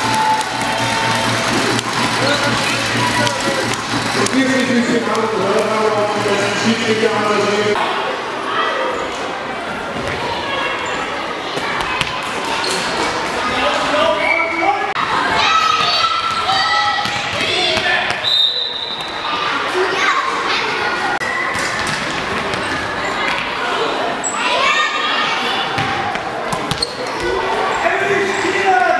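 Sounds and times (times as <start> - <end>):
ball bouncing on hall floor: 15.8 - 18.2.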